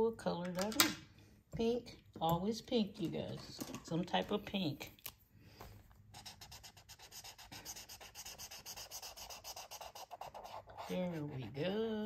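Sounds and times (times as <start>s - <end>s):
highlighter scratching on paper: 6.1s - 11.8s.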